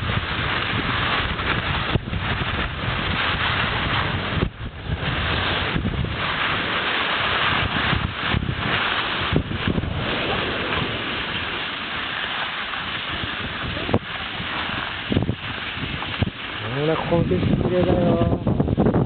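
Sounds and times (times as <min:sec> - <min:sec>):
skis hissing on snow: 0:00.0 - 0:18.2
wind on microphone: 0:00.0 - 0:19.0.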